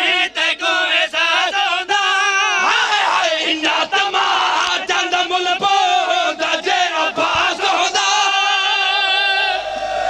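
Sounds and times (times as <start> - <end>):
man chanting through loudspeakers: 0.0 - 9.8
crowd shouting along: 2.2 - 10.0.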